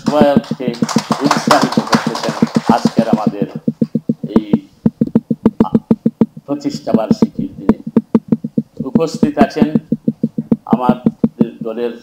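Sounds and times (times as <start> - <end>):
hands clapping fast: 0.0 - 11.6
person speaking: 0.0 - 12.0.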